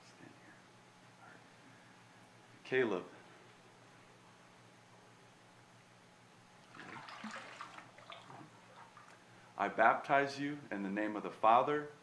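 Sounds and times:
faint room hum: 0.0 - 12.0
water sloshing in tank: 6.6 - 9.3.

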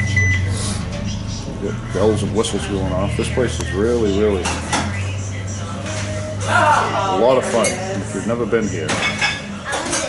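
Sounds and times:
high electronic beeps: 0.0 - 0.6
low hum of kitchen equipment: 0.0 - 10.0.

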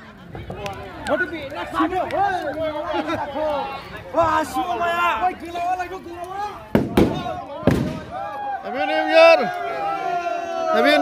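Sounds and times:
firecrackers banging: 6.2 - 8.3.

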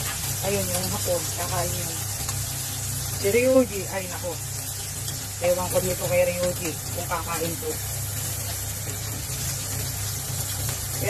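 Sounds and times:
pork sizzling in a pan: 0.0 - 11.0.

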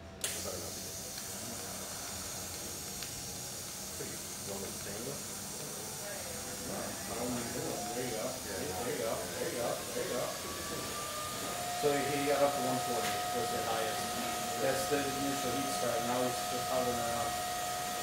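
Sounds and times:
welding arc hissing: 0.2 - 18.0.

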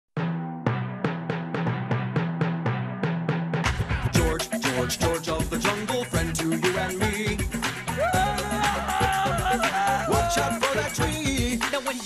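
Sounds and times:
pitched drums struck rhythmically: 1.8 - 12.0
band playing with cymbals: 3.7 - 12.0.

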